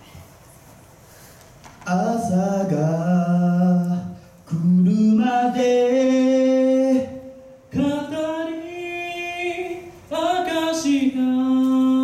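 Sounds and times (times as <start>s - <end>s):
male a cappella group singing: 1.9s - 12.0s.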